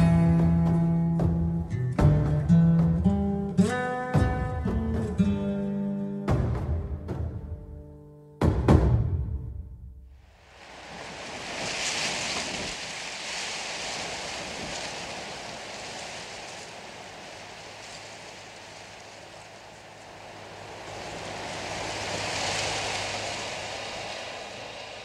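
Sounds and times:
rushing surf-like noise: 10.2 - 25.0.

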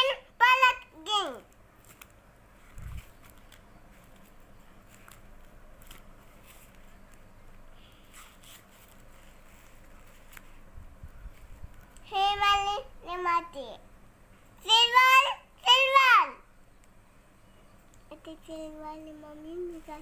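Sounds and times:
young child's high voice: 0.0 - 1.6, 12.0 - 13.9, 14.6 - 16.5, 18.1 - 20.0
paper sheets rustling: 1.8 - 7.2, 7.8 - 10.7.

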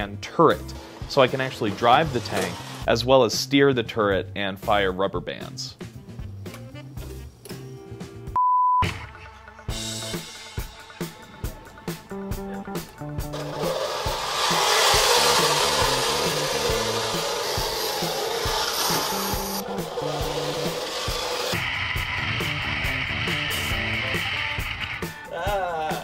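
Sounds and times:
background music with a beat: 5.7 - 26.0
robot tank treads grinding: 13.2 - 21.7.

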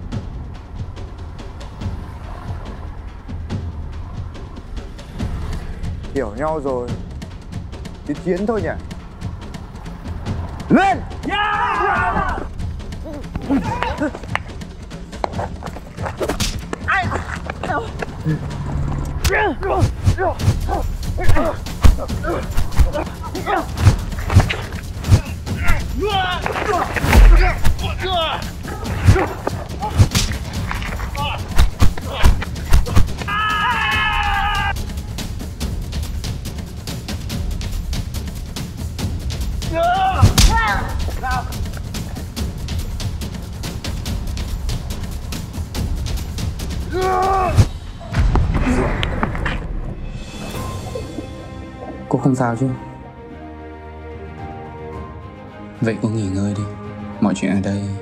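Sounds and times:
action music with percussive beat: 0.0 - 52.7
man shouting: 10.7 - 12.6, 19.3 - 23.8, 25.2 - 30.0, 31.2 - 32.4, 33.3 - 34.7, 39.7 - 41.5, 46.9 - 47.6
people yelling and grunting: 10.7 - 14.3, 16.8 - 34.8, 39.6 - 42.2, 46.8 - 49.4
punches and kicks hitting: 21.3 - 23.1, 26.7 - 28.0, 28.9 - 33.3, 40.2 - 40.9.

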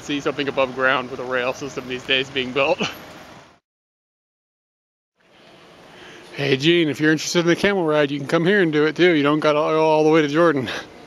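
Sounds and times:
faint outdoor street noise: 0.0 - 3.6, 5.2 - 11.0.

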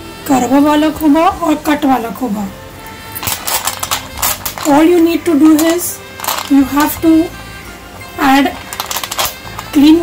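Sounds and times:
clam shells clicking in a bowl: 3.2 - 4.8, 5.5 - 7.0, 8.6 - 9.8.

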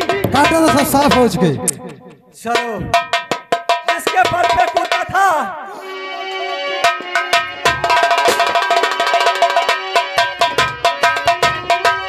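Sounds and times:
ringing metal percussion: 0.0 - 5.2, 6.8 - 12.0
drum strokes: 0.0 - 5.5, 6.8 - 12.0.

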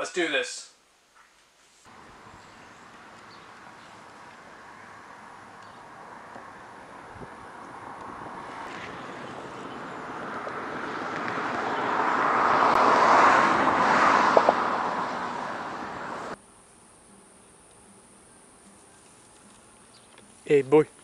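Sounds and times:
vehicle passing: 1.9 - 16.4.

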